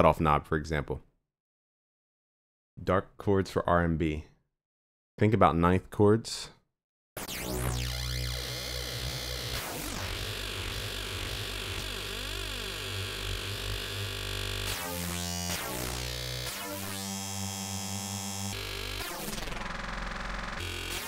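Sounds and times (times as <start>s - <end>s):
distorted synthesizer bass: 7.2s - 21.0s.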